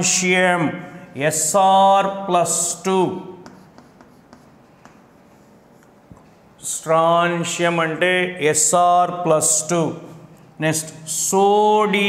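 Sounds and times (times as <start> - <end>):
chalk tapping and scratching on blackboard: 3.4 - 6.4.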